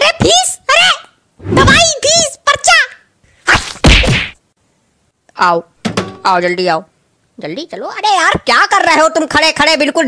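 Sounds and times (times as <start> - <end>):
loud whacks: 3.5 - 4.4.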